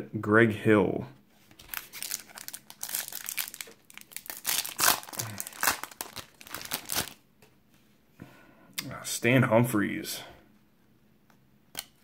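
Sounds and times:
foil wrapper tearing and crinkling: 1.6 - 7.2.

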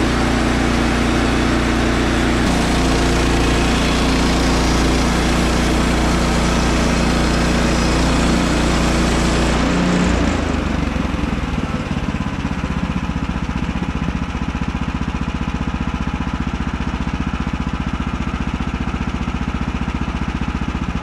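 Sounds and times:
band blade cutting log: 0.0 - 10.5
sawmill engine running: 0.0 - 21.0.

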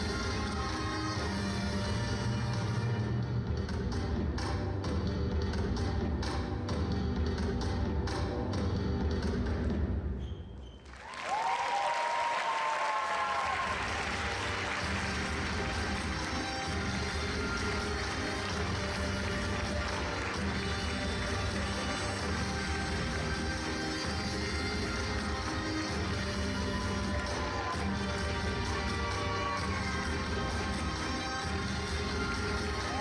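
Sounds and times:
ballroom dance music: 0.0 - 10.2, 13.3 - 33.0
audience applause: 10.9 - 24.0.

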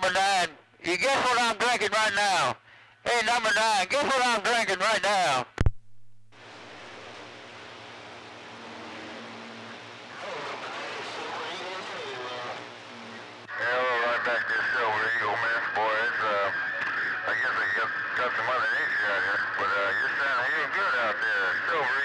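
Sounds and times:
faint garbled radio voices: 0.0 - 5.6, 6.4 - 22.0
radio receiver hiss: 0.0 - 22.0
muffled voice through radio speaker: 9.2 - 22.0.

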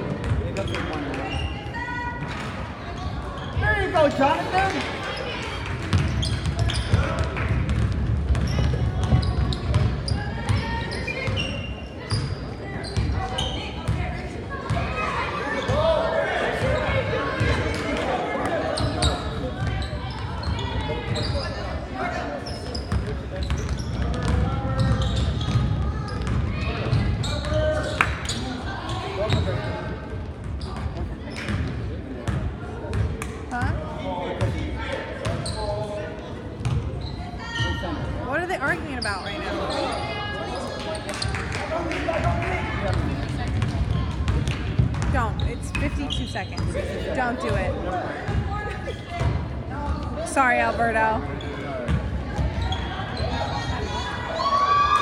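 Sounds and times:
basketball bouncing on hardwood: 5.9 - 9.9, 43.5 - 45.3.

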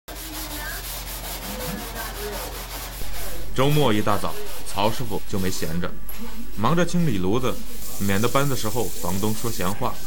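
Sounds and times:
scouring pad scrubbing stovetop: 0.1 - 10.0
low hum: 3.0 - 9.0.

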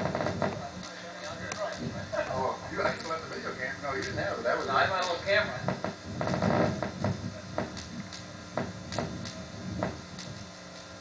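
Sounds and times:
sharp clicks and knocks: 5.0 - 10.9.

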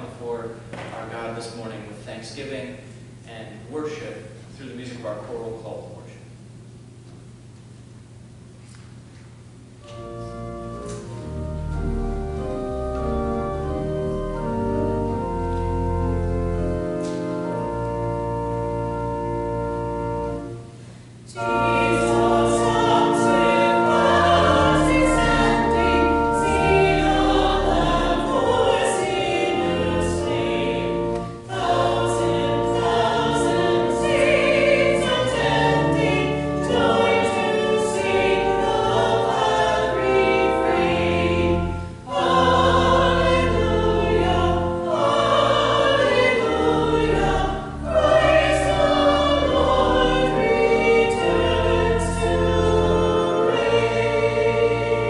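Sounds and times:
church choir singing: 9.8 - 55.0
pipe organ bass notes: 9.8 - 55.0.

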